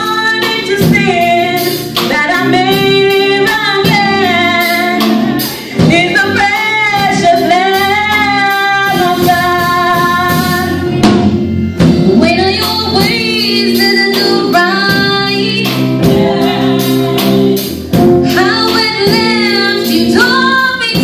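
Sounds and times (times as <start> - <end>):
church band drums: 0.0 - 21.0
gospel choir singing: 12.9 - 20.8.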